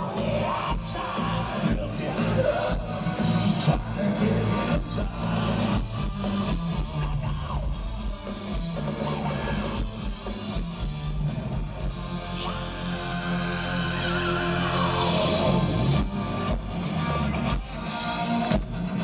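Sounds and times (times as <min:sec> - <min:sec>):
bass guitar: 0:00.0 - 0:19.0
drums: 0:00.0 - 0:19.0
electric guitar: 0:00.0 - 0:19.0.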